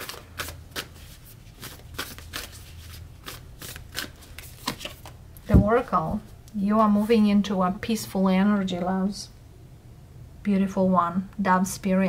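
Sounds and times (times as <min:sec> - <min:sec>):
cards being shuffled: 0:00.0 - 0:05.6.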